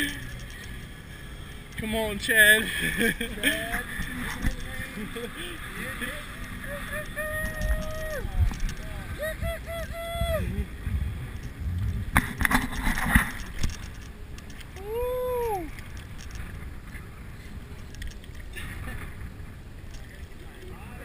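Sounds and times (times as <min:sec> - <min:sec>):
wind: 0:00.0 - 0:21.0
man whooping: 0:06.2 - 0:08.4, 0:09.0 - 0:10.7, 0:14.8 - 0:15.7.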